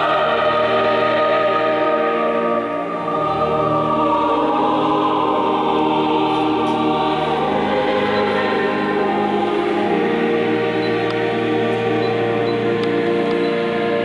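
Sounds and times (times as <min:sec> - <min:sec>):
choir singing sustained chords: 0:00.0 - 0:14.0.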